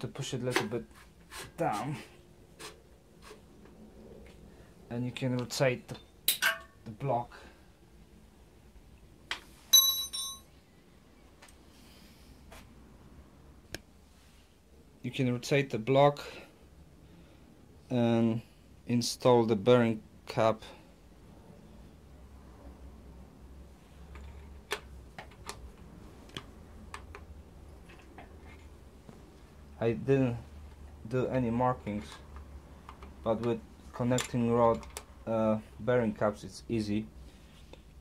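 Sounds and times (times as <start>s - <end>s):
metal tool clinking against metal: 9.7s - 10.5s.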